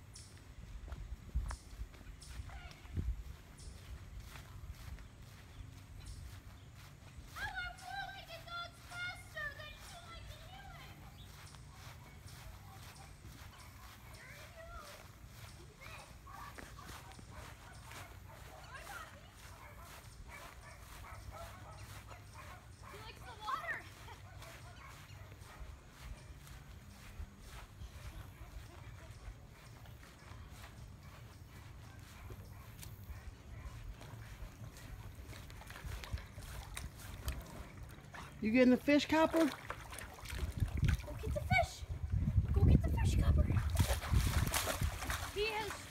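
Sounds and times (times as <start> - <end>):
footsteps on grass: 0.0 - 45.9
wind and handling on microphone: 40.2 - 45.6.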